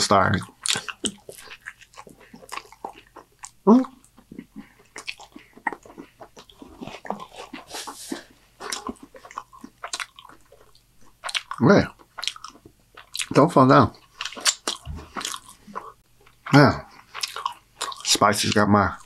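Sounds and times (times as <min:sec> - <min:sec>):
biting and chewing food: 0:00.0 - 0:19.0
wet mouth clicks and smacks: 0:00.6 - 0:07.2.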